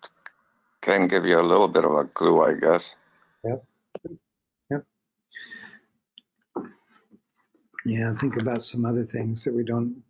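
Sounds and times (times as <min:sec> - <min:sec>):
person exhaling: 0:05.4 - 0:05.8.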